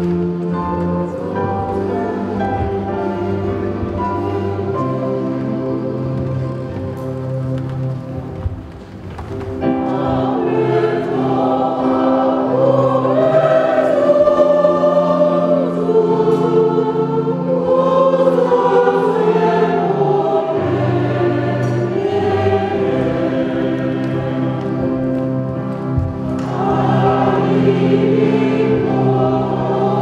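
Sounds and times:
voices singing a hymn: 0.0 - 8.3, 9.6 - 30.0.

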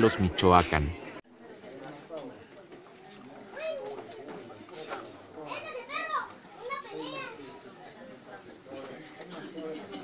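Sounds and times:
murmur of adult chatter: 0.0 - 10.0.

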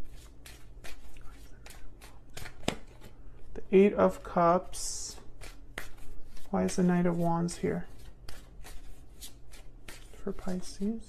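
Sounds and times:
cards being shuffled by hand: 0.0 - 3.2, 5.1 - 11.0.

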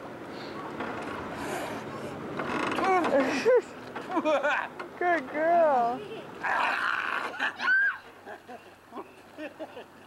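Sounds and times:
girl squealing and laughing: 6.4 - 8.2.

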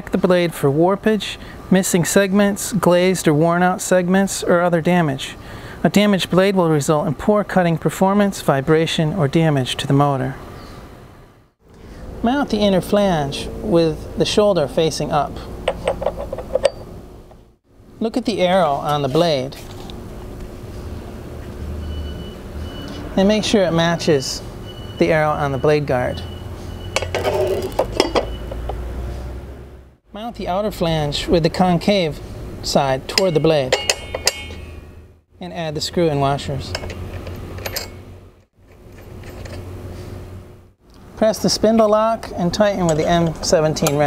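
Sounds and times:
steady low hum: 29.7 - 44.0.

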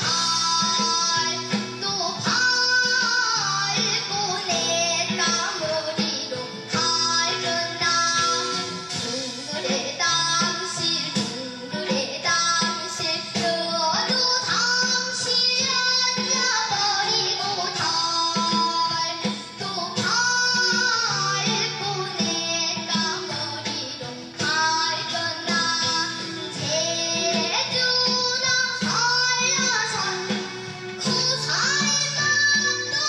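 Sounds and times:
girl singing into microphone: 0.0 - 33.0
instrumental accompaniment: 0.0 - 33.0.

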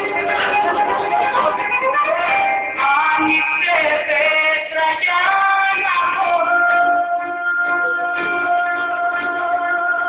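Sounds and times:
high singing voice: 0.0 - 10.0
musical accompaniment: 0.0 - 10.0.

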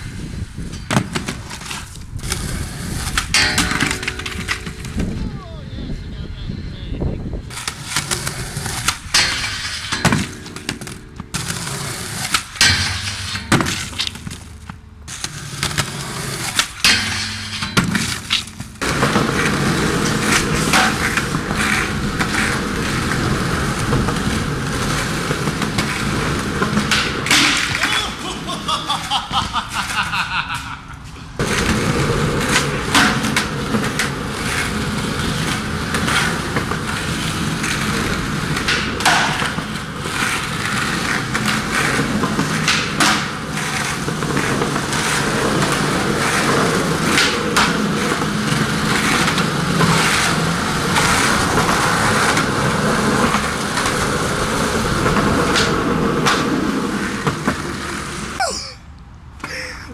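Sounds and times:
skateboard wheels rolling on concrete: 0.0 - 59.9
skateboard clacks and knocks: 0.6 - 5.2, 7.5 - 30.2, 31.4 - 58.4.

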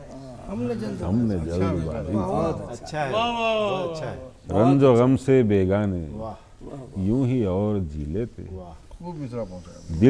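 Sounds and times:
man reciting poetry half-sung: 0.0 - 10.0.

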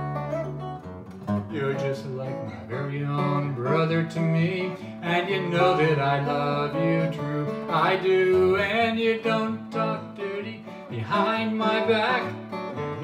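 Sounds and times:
acoustic guitar strumming: 0.0 - 13.0
man singing: 1.4 - 13.0.

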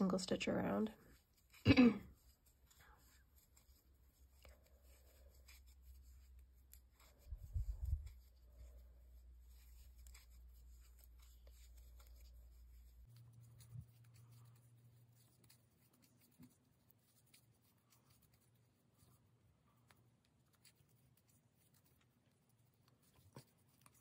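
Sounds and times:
crochet hook scratching yarn: 0.0 - 24.0.

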